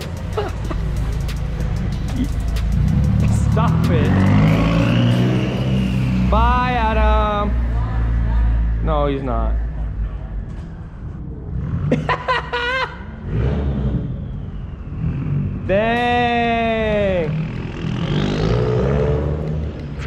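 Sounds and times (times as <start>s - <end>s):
loud rising and falling note: 0.0s - 8.9s, 13.0s - 19.8s
car engine rumbling: 0.0s - 20.0s.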